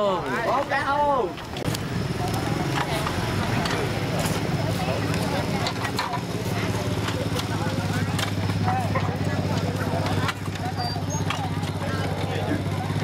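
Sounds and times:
people talking: 0:00.0 - 0:13.0
engine humming: 0:01.0 - 0:13.0.

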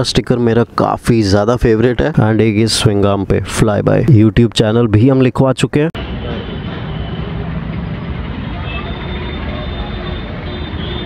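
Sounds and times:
traffic rumble and hum: 0:00.0 - 0:11.0
faint voices: 0:08.4 - 0:10.5.

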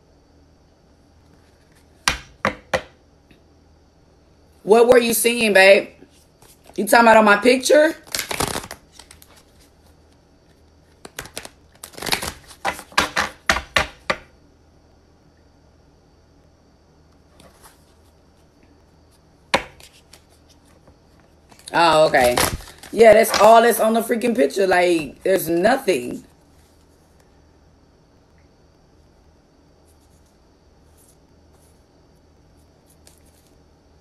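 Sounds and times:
cards knocked on wooden table: 0:02.0 - 0:03.0, 0:12.6 - 0:14.3, 0:19.5 - 0:19.9.

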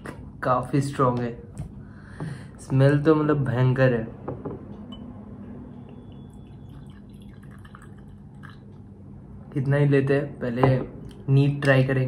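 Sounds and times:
liquid trickling into glass: 0:05.9 - 0:08.8.

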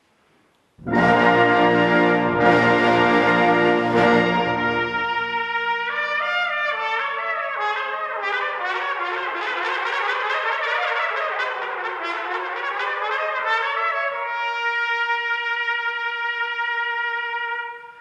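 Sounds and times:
low brass chord: 0:00.8 - 0:06.5
solo trumpet playing: 0:00.8 - 0:18.0.

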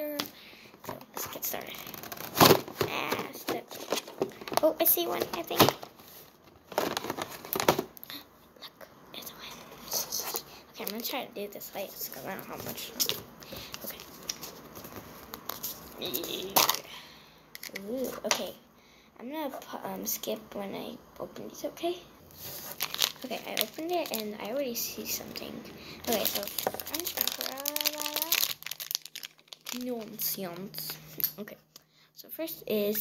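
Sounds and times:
plastic wrapper crinkling: 0:01.2 - 0:08.0, 0:22.3 - 0:31.4
plastic capsule clicks and crinkles: 0:17.6 - 0:18.4, 0:22.8 - 0:24.5, 0:26.0 - 0:31.4.

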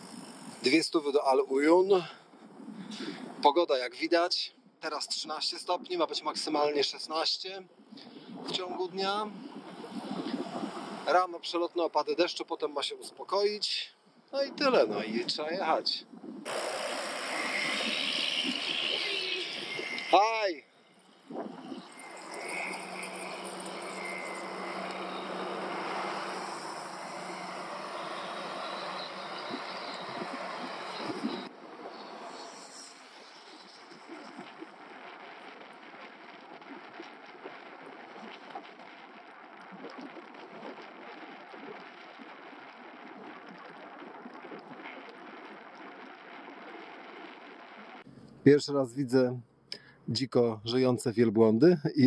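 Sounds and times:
bicycle road noise: 0:00.0 - 0:00.9, 0:09.3 - 0:11.2, 0:16.4 - 0:48.1
wind on microphone: 0:02.3 - 0:03.4, 0:07.8 - 0:11.2, 0:21.2 - 0:38.8
low steady hum: 0:12.4 - 0:46.6.

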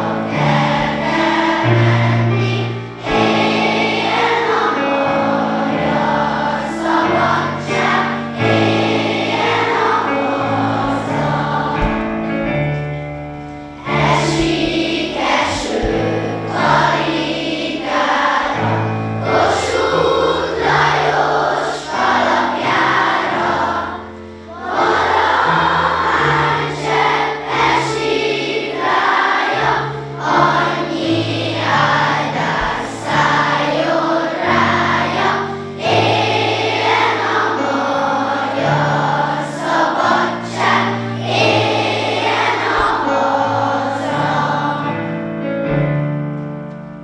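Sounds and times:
children and adults singing: 0:00.0 - 0:12.8, 0:13.6 - 0:45.1.

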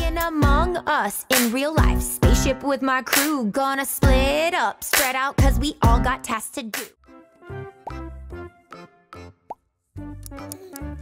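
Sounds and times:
playful background music: 0:00.0 - 0:03.3, 0:05.0 - 0:11.0.

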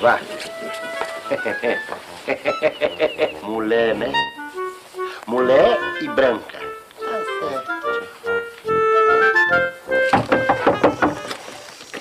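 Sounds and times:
background music: 0:00.0 - 0:11.6
person speaking: 0:03.3 - 0:09.4.

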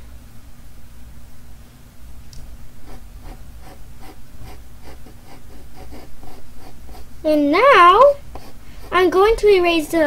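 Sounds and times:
pencil scratching on paper: 0:02.8 - 0:09.6.

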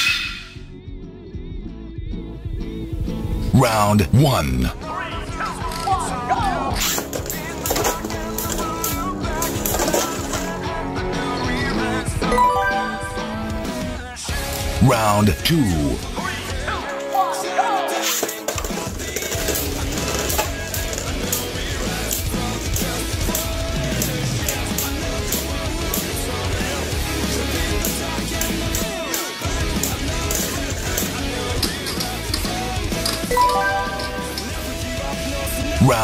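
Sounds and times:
loud background music: 0:00.0 - 0:17.8, 0:18.6 - 0:36.0.

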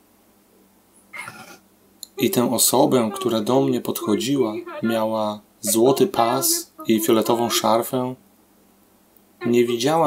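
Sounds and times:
woman whimpering: 0:01.2 - 0:05.1, 0:05.7 - 0:07.8.

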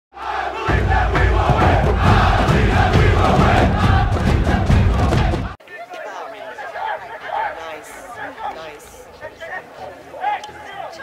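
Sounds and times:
crowd cheering and roaring: 0:00.2 - 0:08.6.

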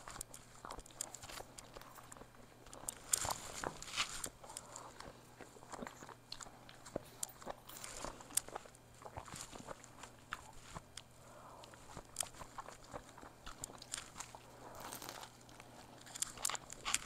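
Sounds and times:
crunchy chewing: 0:00.0 - 0:17.0.

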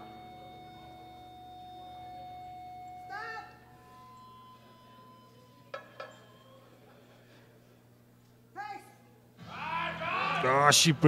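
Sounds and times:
faint steady tones: 0:00.0 - 0:08.1.

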